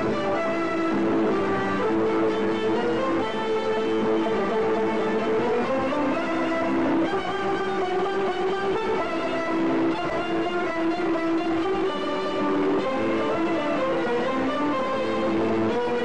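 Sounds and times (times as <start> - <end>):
violins and plucked strings ensemble: 0.0 - 16.0.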